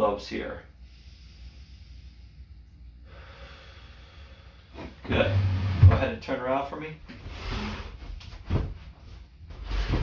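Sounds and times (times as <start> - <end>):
deep breath: 0.7 - 5.7.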